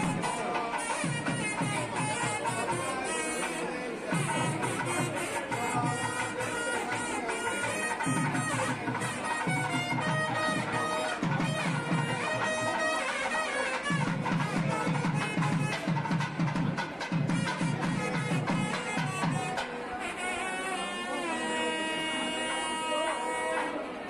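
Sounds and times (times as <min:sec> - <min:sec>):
loud reedy wind instrument melody: 0:00.0 - 0:16.4, 0:17.0 - 0:24.0
rhythmic drumming: 0:00.0 - 0:19.7.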